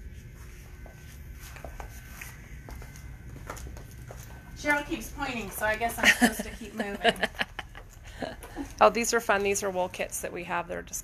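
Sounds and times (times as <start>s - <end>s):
steady low rumble: 0.0s - 11.0s
footsteps on hard floor: 0.1s - 6.4s.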